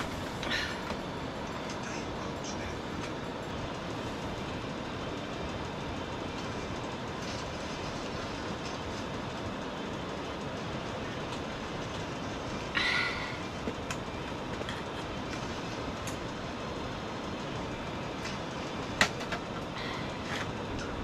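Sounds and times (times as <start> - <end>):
steady rushing noise: 0.0 - 21.0.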